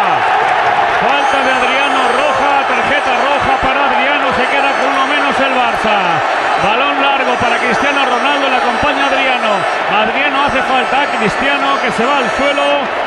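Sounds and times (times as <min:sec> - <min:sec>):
stadium crowd noise: 0:00.0 - 0:13.0.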